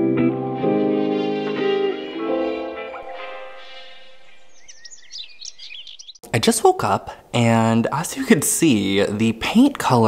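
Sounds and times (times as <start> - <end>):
guitar music: 0.0 - 4.6
birds chirping: 1.5 - 6.4.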